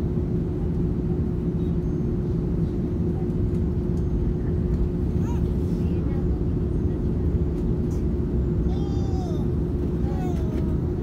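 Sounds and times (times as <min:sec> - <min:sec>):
airplane cabin rumble: 0:00.0 - 0:11.0.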